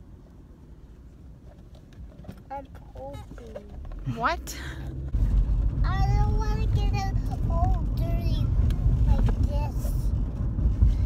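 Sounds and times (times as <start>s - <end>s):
car interior rumble: 0.0s - 11.0s.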